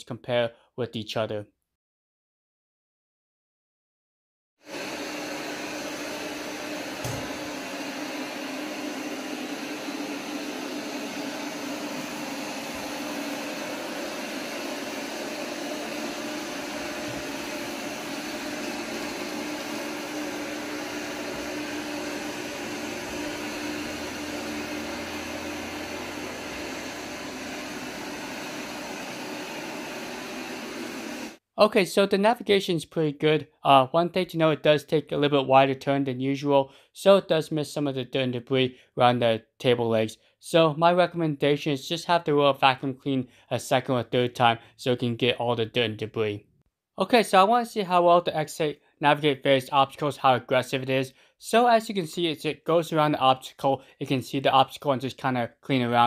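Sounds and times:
robot vacuum whirring: 4.7 - 31.4.

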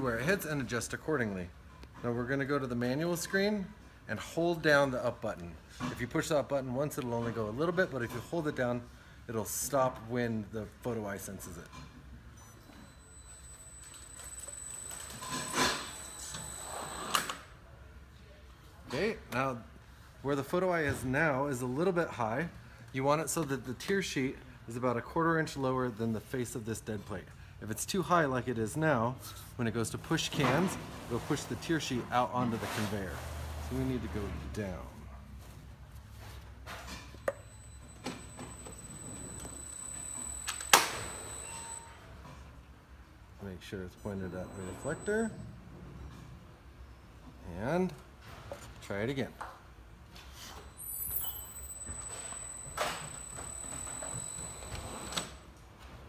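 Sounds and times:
lift carriage running with whine: 37.2 - 42.1, 50.5 - 55.4.

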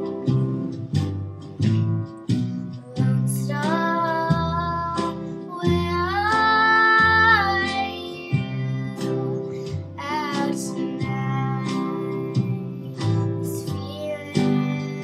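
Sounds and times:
acoustic guitar picking: 0.0 - 15.0
girl singing: 2.9 - 15.0.

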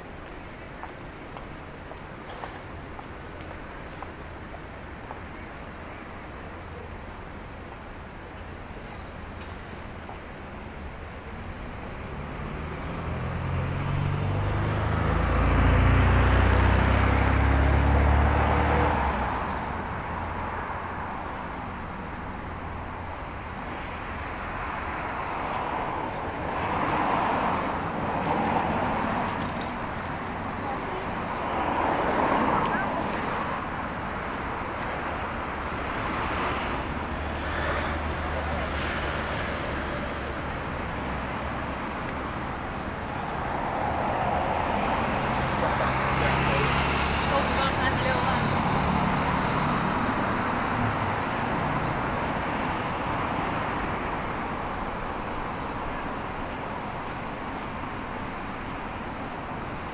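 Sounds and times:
high insect trill: 0.0 - 59.9
vehicles passing: 0.0 - 59.9.

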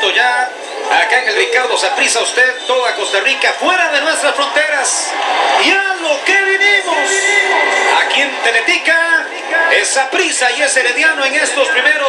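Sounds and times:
commentator through television speaker: 0.0 - 12.0.

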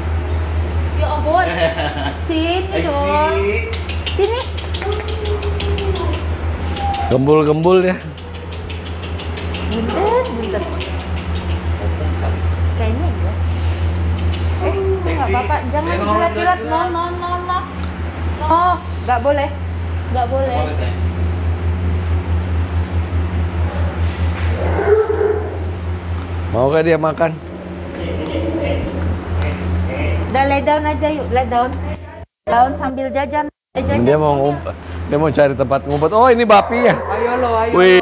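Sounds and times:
low engine-like rumble: 0.0 - 38.0
low mechanical hum: 0.0 - 38.0
faint irregular clicks: 3.7 - 11.8, 13.9 - 14.6.

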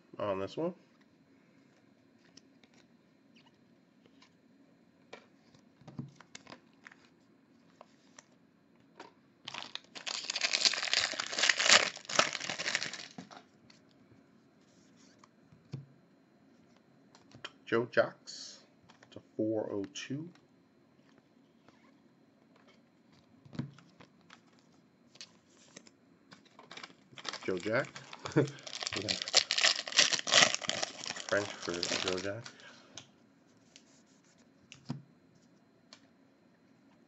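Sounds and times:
foil wrapper tearing and crinkling: 9.5 - 13.2, 26.6 - 32.5.

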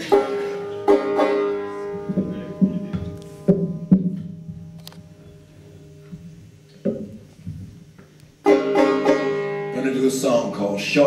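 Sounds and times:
banjo being plucked: 0.0 - 4.8, 8.4 - 10.6.

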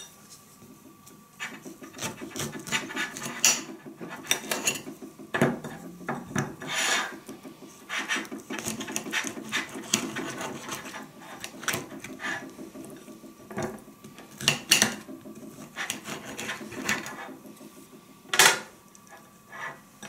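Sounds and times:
scrape on plate: 6.6 - 7.2, 19.1 - 19.8
orange peel rasping and rubbing: 15.6 - 17.3.

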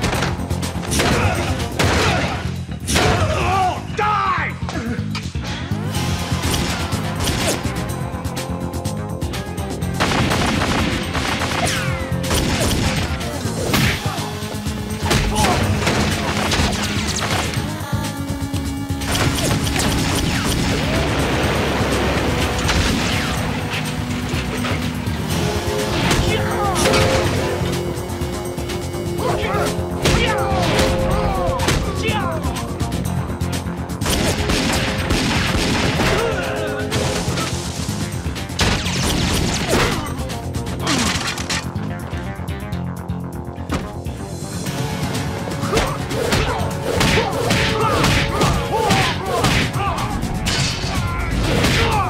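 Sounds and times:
dramatic action music: 0.0 - 52.0
people grunting and shouting: 0.8 - 7.6, 11.5 - 21.3, 25.8 - 32.9, 35.8 - 37.7, 39.5 - 41.4, 45.5 - 52.0
punch and kick impacts: 45.8 - 49.8.

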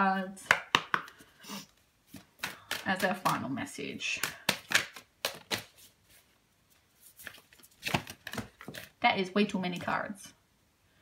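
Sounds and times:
cards being shuffled: 2.1 - 3.4, 4.1 - 9.0.

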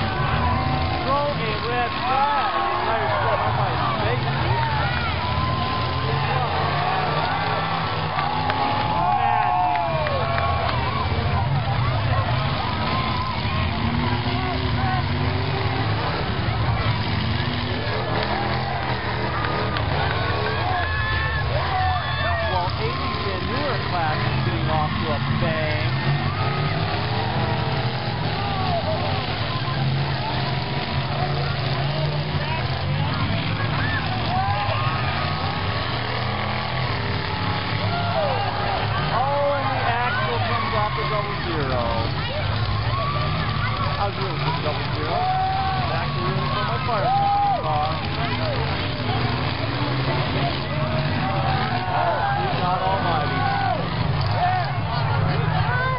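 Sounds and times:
car engines droning: 0.0 - 55.9
crowd talking and calling out: 0.0 - 55.9.

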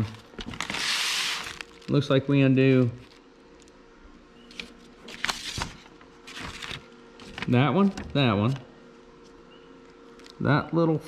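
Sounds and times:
plastic packaging rustling: 0.0 - 3.8, 4.5 - 8.6.

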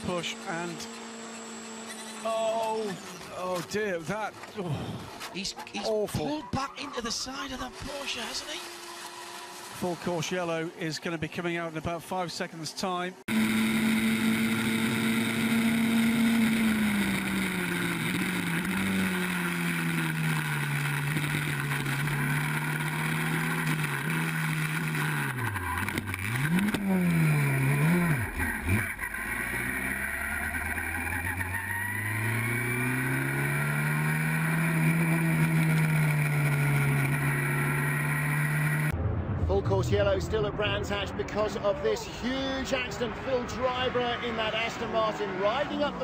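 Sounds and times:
race car engine at high revs: 0.0 - 5.3, 7.5 - 10.2, 13.2 - 39.0.

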